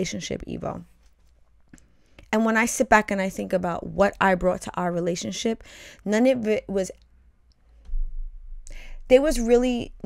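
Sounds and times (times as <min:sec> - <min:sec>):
person talking: 0:02.4 - 0:06.9, 0:09.1 - 0:10.0
microphone handling rumble: 0:07.8 - 0:09.7.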